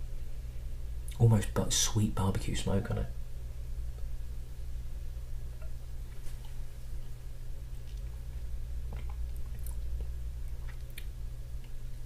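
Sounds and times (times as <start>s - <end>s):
steady low hum: 0.0s - 12.0s
wet mouth clicks and lip smacks: 8.8s - 11.8s.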